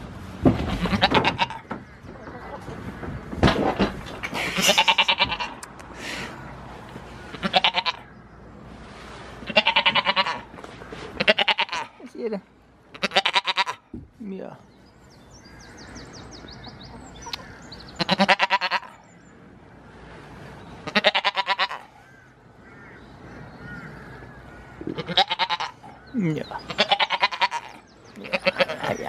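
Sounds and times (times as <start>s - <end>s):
goats bleating: 4.5s - 5.6s, 7.3s - 8.0s, 9.5s - 10.5s, 11.2s - 12.0s, 18.0s - 19.0s, 24.9s - 25.8s, 26.6s - 29.0s.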